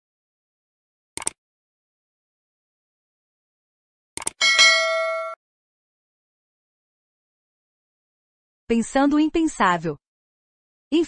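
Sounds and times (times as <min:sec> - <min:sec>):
quick clicks: 0:01.2 - 0:01.4, 0:04.2 - 0:04.4
bright bell ding: 0:04.4 - 0:05.4.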